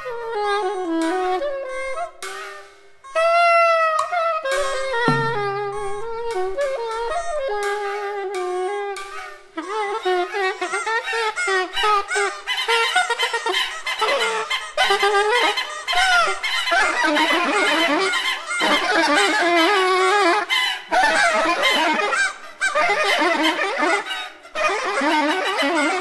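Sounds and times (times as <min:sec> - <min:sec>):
soprano saxophone squawking: 0:00.0 - 0:26.0
squeaking percussion: 0:00.0 - 0:26.0.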